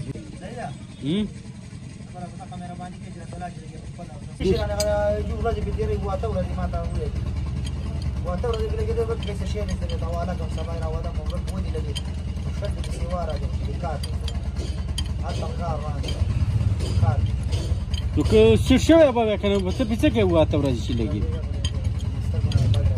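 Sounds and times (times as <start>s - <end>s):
low mechanical rumble: 0.0s - 22.9s
people talking: 2.1s - 7.2s, 15.2s - 17.5s, 18.1s - 22.9s
spanner metallic clicks: 4.6s - 22.9s.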